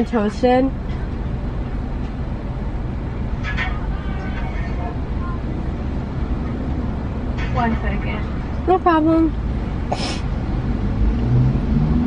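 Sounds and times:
car engine idling: 0.0s - 10.8s
faint voice: 3.6s - 5.5s.

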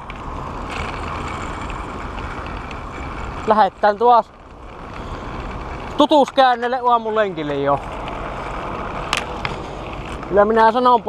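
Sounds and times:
bicycle tyres on asphalt: 0.0s - 11.0s.

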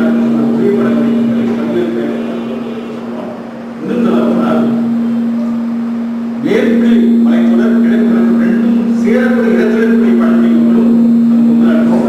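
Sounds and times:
man lecturing into microphone: 0.0s - 4.9s, 6.4s - 12.0s
loud steady low hum: 0.0s - 12.0s.

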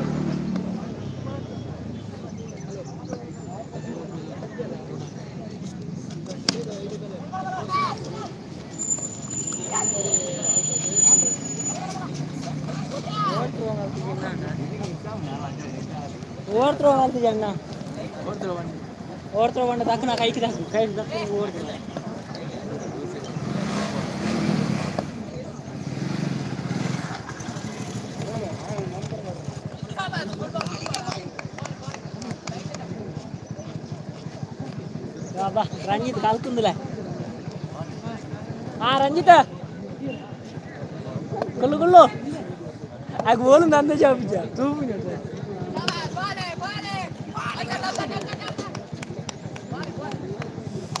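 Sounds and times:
people talking and calling out: 0.0s - 51.0s.

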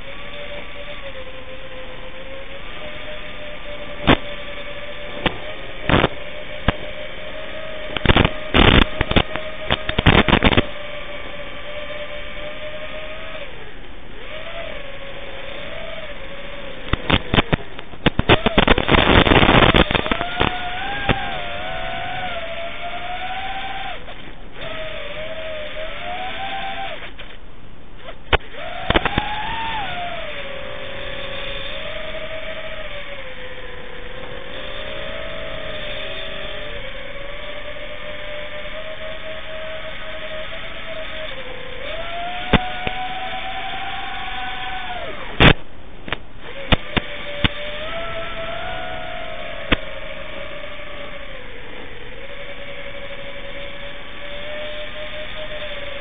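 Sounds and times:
rush of propeller wash: 0.0s - 27.4s, 28.0s - 56.0s
quadcopter motors whining: 0.0s - 56.0s.

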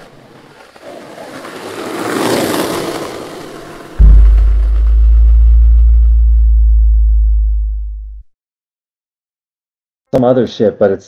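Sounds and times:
deep synthesized bass tone: 4.0s - 8.3s.

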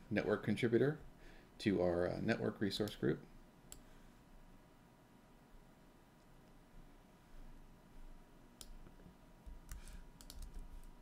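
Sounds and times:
keyboard keystrokes: 9.6s - 10.6s.

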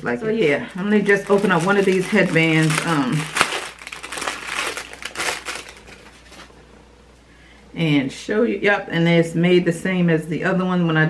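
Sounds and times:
packaging crinkling: 0.8s - 6.6s.

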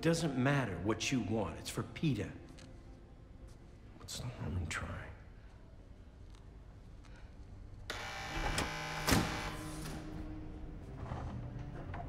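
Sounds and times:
door mechanism clunk: 7.9s - 10.1s
motorised door whirring: 7.9s - 10.2s.

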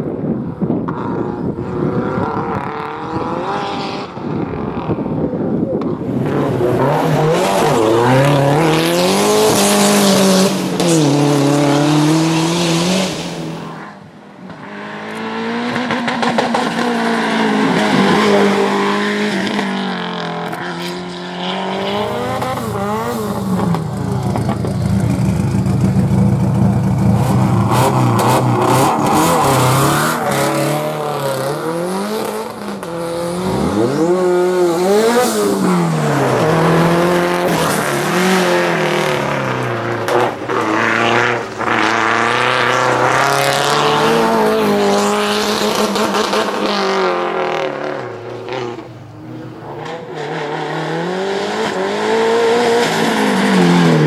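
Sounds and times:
car engine revving hard: 6.1s - 13.8s, 14.6s - 49.0s, 49.7s - 54.0s.

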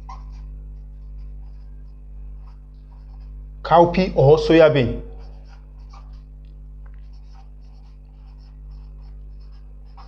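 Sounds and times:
steady low hum: 0.0s - 10.0s
marker writing on whiteboard: 2.4s - 6.3s, 7.0s - 10.0s.

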